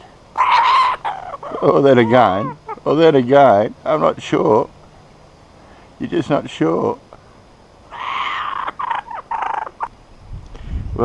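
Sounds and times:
kookaburra chuckling call: 0.4 - 3.1, 7.9 - 9.9.

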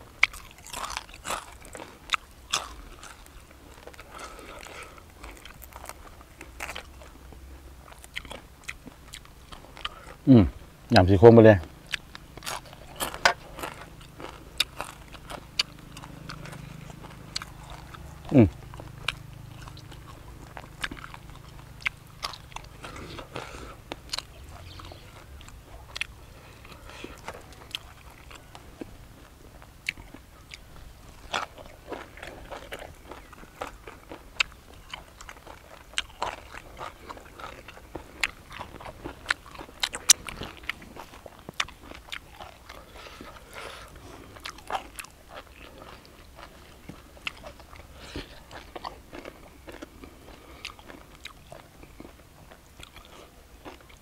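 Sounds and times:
chewing and crunching: 0.0 - 54.0.

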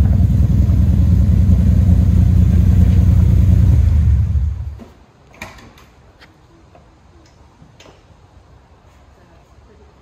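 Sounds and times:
low steady rumble: 0.0 - 4.8.

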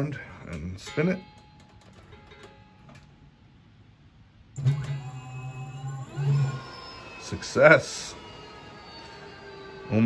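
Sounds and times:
electric motor whine: 4.6 - 10.0.

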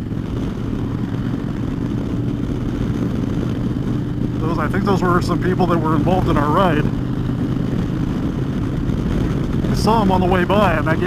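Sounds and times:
motorcycle engine cruising: 0.0 - 11.0
wind noise: 0.0 - 11.0.

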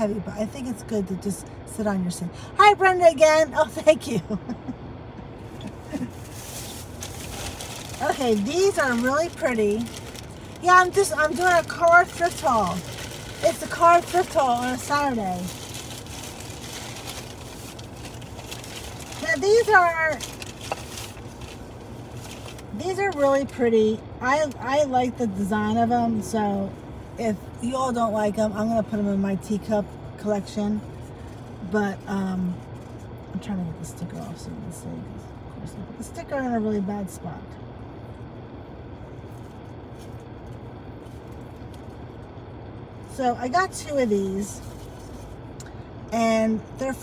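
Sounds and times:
low hum in car cabin: 0.0 - 47.0
paper and plastic bag rustling: 6.0 - 22.8.

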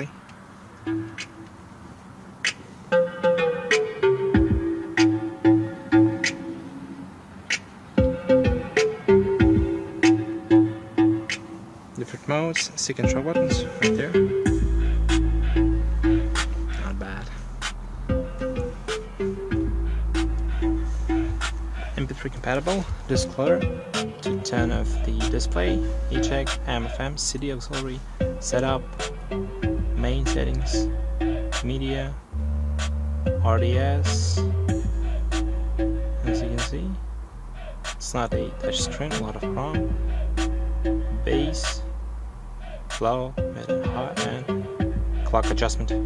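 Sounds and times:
music from car speakers: 0.0 - 46.0.

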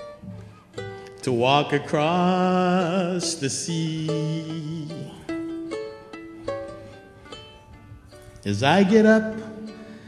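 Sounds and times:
ukulele strummed chords: 0.0 - 10.0
person singing: 1.2 - 5.6, 8.4 - 10.0.

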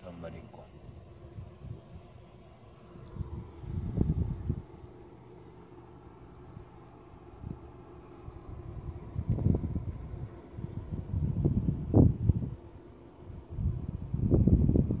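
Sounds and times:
wind buffeting microphone: 0.8 - 2.2, 2.8 - 5.0, 6.4 - 15.0.

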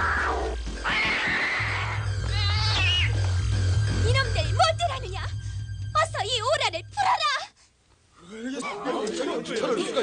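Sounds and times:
background music: 0.0 - 7.6.

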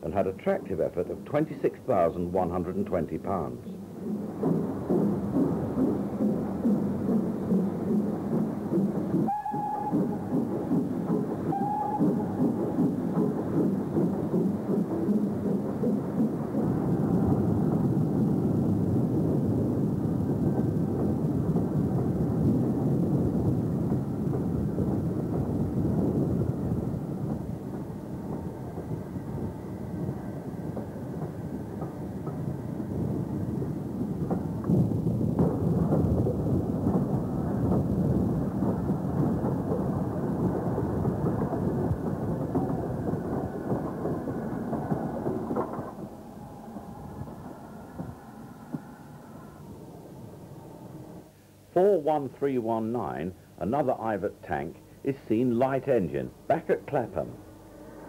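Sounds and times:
steam train rumbling: 0.0 - 58.0.

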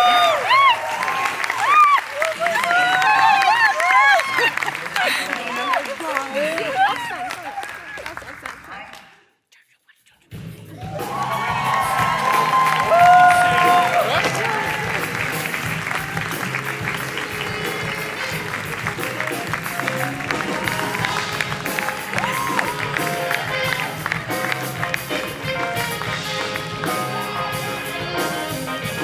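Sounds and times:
excited crowd voices: 0.0 - 8.5, 10.7 - 29.0
live band playing upbeat music: 0.0 - 8.5, 10.3 - 29.0
audience clapping and cheering: 0.0 - 9.2, 10.7 - 29.0.

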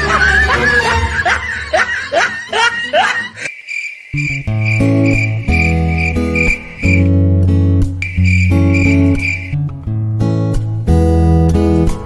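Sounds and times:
background music: 0.0 - 3.4, 4.2 - 12.0
person laughing: 0.0 - 3.5
plucked guitar notes: 4.3 - 12.0.

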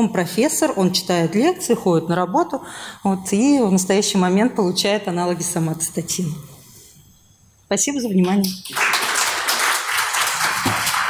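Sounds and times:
audience applauding: 8.6 - 11.0.

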